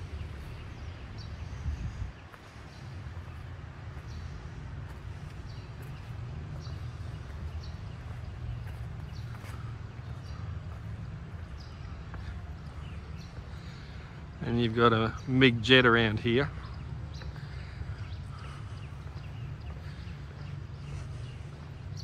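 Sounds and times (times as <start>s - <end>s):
bird chirping: 0.0s - 22.0s
steady low city rumble: 0.0s - 22.0s.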